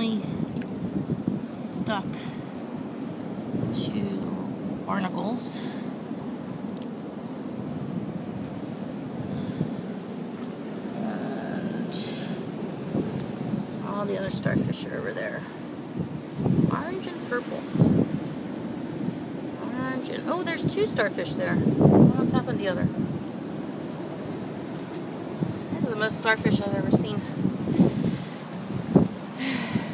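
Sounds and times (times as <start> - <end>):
ocean surf rumbling: 0.0 - 29.9
wind buffeting microphone: 0.0 - 29.9.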